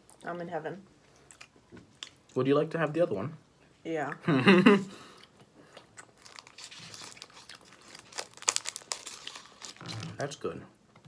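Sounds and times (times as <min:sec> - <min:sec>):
wrapper crinkling: 0:06.0 - 0:10.4.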